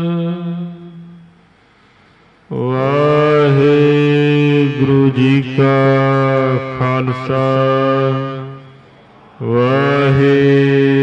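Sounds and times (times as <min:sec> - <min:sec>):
person chanting: 0:00.0 - 0:01.4, 0:02.5 - 0:11.0.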